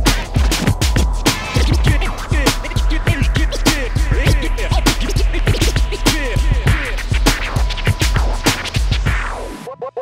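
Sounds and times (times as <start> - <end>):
steady drum beat: 0.0 - 9.6
deep bass: 0.0 - 9.7
turntable record scratching: 0.0 - 10.0.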